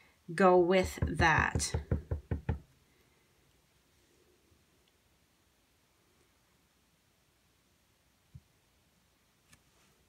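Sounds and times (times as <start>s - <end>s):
stamp knocking on ink pad: 0.8s - 2.6s.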